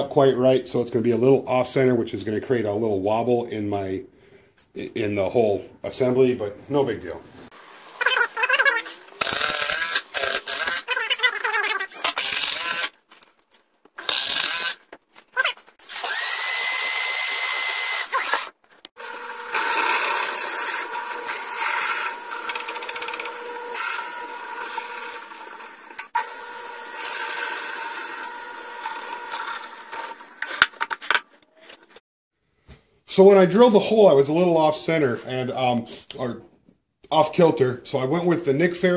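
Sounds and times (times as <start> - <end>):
power tool bursts: 8.8 - 10.9, 11.9 - 12.9, 14.0 - 14.8, 15.8 - 30.6
drill press boring into wood: 8.9 - 11.1, 11.9 - 12.9, 14.0 - 14.8, 15.4 - 30.7.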